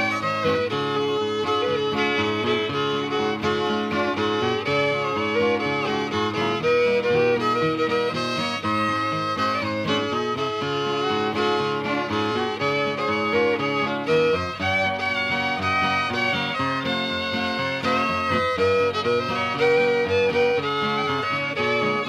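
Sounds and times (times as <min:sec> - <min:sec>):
acoustic guitar accompaniment: 0:00.0 - 0:22.0
fiddle playing a march: 0:00.0 - 0:22.0.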